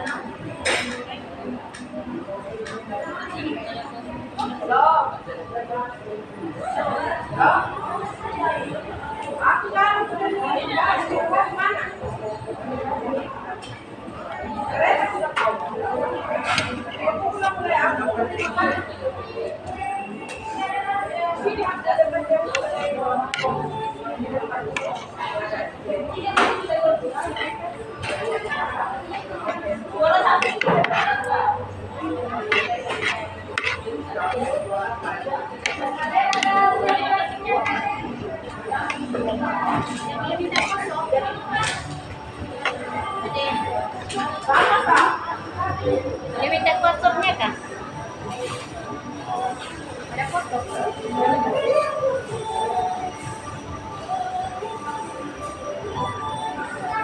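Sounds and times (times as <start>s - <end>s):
background chatter of diners: 0.0s - 57.0s
background talk: 0.0s - 57.0s.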